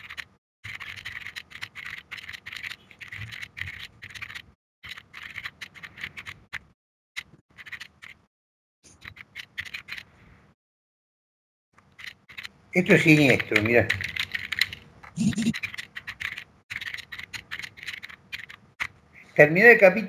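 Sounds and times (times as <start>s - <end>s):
rapid typing on a keyboard: 0.0s - 8.2s, 9.0s - 10.1s, 11.8s - 19.0s.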